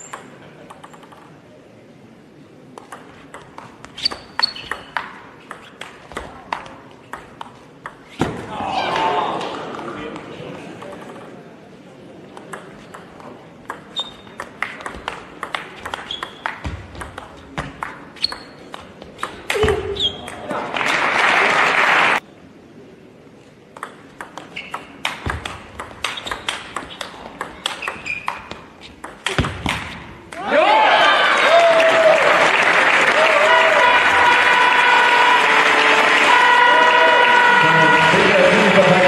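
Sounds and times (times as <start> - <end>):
table tennis ball clicking: 0.0 - 1.4, 2.8 - 8.0, 12.3 - 19.6, 23.7 - 29.8
crowd applause: 20.6 - 22.2, 30.7 - 39.0.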